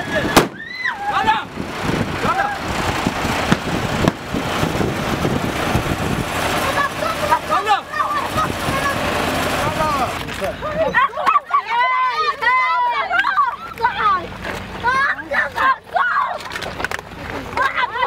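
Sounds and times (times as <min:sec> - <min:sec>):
child shouting: 0:00.0 - 0:01.4, 0:06.6 - 0:09.2, 0:10.8 - 0:16.5
people shouting: 0:00.0 - 0:01.5, 0:06.6 - 0:14.2, 0:14.8 - 0:16.4
wind noise on microphone: 0:00.0 - 0:07.2, 0:08.2 - 0:10.2
heavy truck running: 0:00.0 - 0:11.1, 0:11.8 - 0:18.0.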